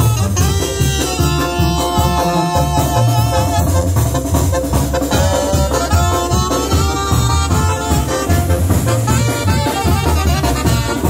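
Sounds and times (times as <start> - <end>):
bass line: 0.0 - 11.0
drums: 0.0 - 11.0
keyboard: 0.0 - 11.0
saxophones holding notes: 0.0 - 11.0.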